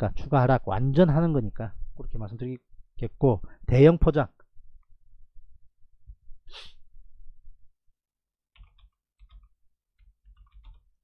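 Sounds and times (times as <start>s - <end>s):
breath: 3.4s - 3.6s.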